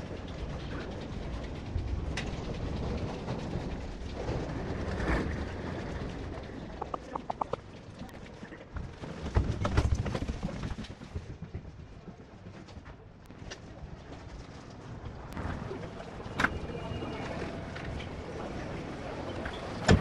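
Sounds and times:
loud thumps: 6.8s - 7.6s.

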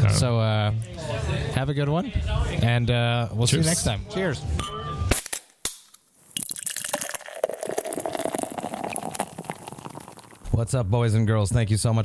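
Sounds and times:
fizzing crackle: 6.2s - 10.5s
liquid pouring into a glass: 6.3s - 10.5s.

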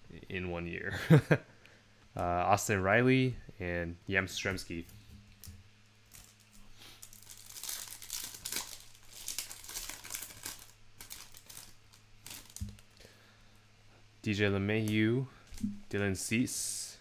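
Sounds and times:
faint low hum: 0.0s - 17.0s
foil pack tearing and crinkling: 6.1s - 12.8s.

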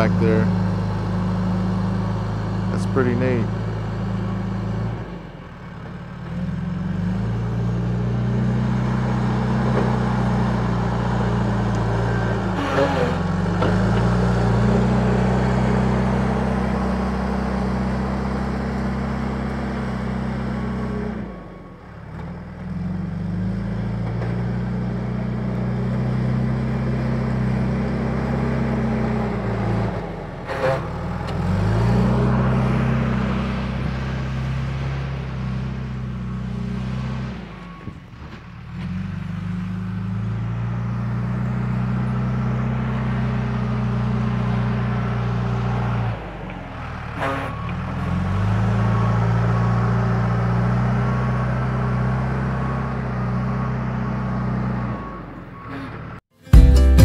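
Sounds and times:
diesel engine working under load: 0.0s - 57.0s.

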